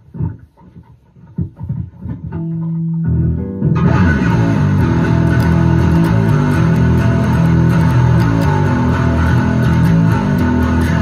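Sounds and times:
electric bass muted plucks: 1.4s - 11.0s.

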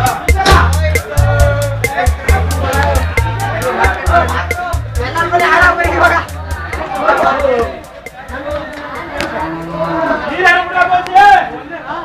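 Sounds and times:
people's voices: 0.0s - 12.0s
elephant calling: 5.3s - 10.4s.

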